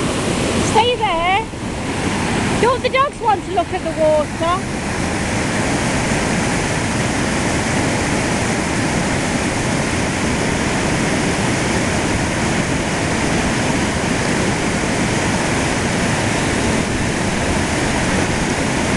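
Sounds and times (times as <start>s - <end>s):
water rushing over weir: 0.0s - 18.9s.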